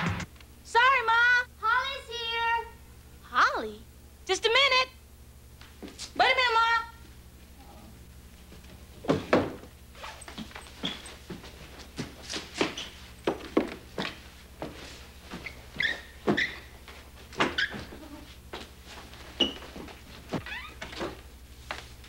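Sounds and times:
low electrical hum: 0:00.0 - 0:22.0
short squeaks: 0:10.0 - 0:11.2, 0:15.4 - 0:16.8, 0:19.4 - 0:19.8, 0:20.4 - 0:21.0.

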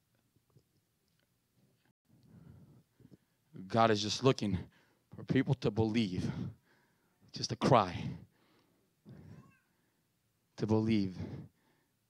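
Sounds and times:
faint high-pitched cry: 0:09.1 - 0:09.8.

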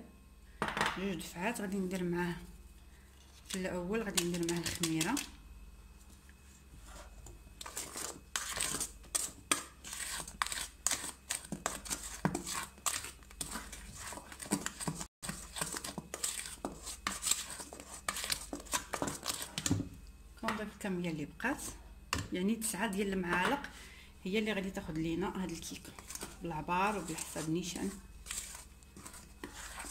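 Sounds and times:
batter sloshing: 0:06.7 - 0:20.0, 0:24.7 - 0:29.9
spatula scraping steel bowl: 0:06.8 - 0:19.7, 0:25.3 - 0:29.9.

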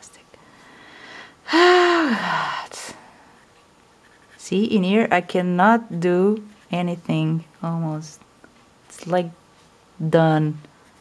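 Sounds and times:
short breath: 0:00.5 - 0:02.7
woman sighing: 0:01.0 - 0:02.8.

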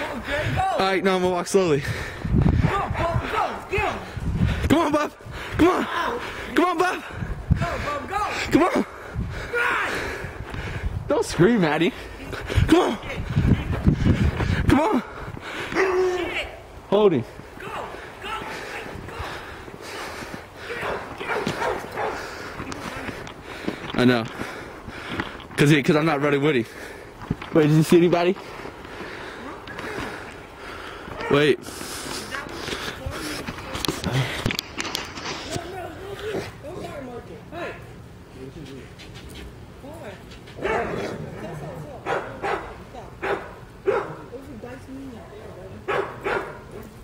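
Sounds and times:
distant shouting voices: 0:00.0 - 0:34.4
dog barking: 0:20.7 - 0:22.2, 0:40.6 - 0:41.0, 0:42.0 - 0:44.3, 0:45.9 - 0:46.8.

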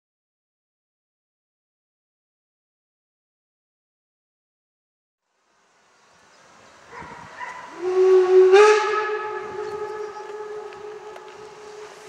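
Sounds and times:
steam locomotive whistle: 0:07.8 - 0:12.0.

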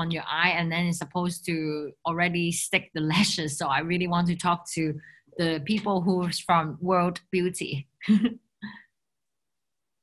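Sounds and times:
woman laughing: 0:08.0 - 0:08.8.

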